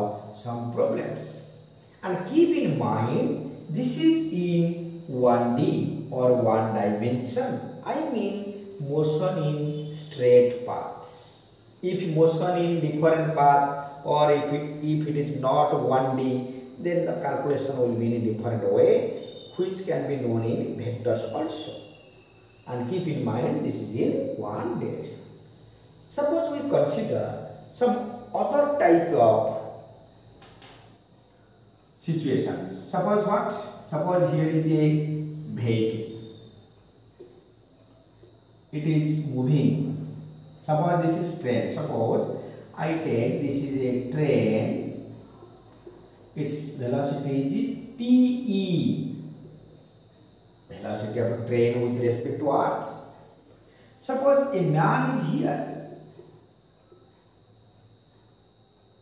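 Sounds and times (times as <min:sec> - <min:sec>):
faint high-pitched whine: 0:00.0 - 0:59.0
faint high-pitched tone: 0:16.9 - 0:25.1.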